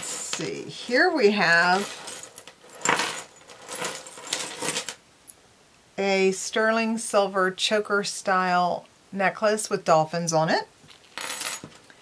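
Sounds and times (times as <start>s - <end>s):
jewelry clinking and jingling: 0.0s - 5.0s, 11.0s - 11.9s.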